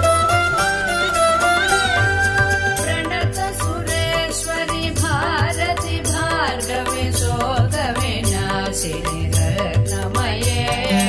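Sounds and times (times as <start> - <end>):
person singing devotional song: 0.0 - 11.0
regular percussion: 0.0 - 11.0.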